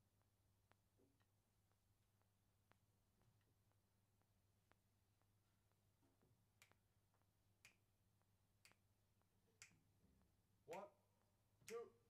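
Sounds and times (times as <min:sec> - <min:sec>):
finger snaps: 0:07.6 - 0:07.8, 0:08.6 - 0:08.8.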